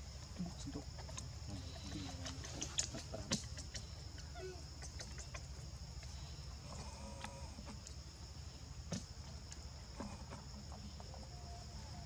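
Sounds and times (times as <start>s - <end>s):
faint animal call: 1.5s - 5.5s, 6.1s - 7.8s, 9.9s - 12.0s.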